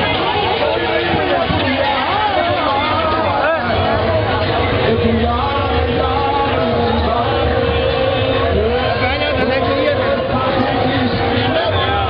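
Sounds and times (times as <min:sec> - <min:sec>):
dense din of voices: 0:00.0 - 0:12.0
music: 0:00.0 - 0:12.0.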